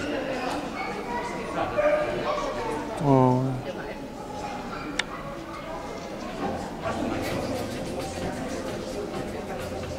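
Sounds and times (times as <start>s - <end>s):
people chattering: 0.0s - 9.9s.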